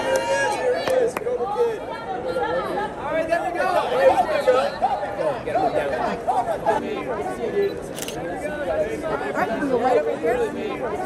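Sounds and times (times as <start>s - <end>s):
overlapping indistinct chatter: 0.0s - 11.0s.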